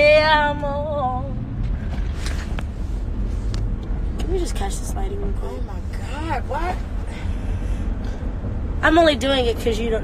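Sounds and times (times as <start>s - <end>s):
car rumble from inside cabin: 0.0s - 10.0s.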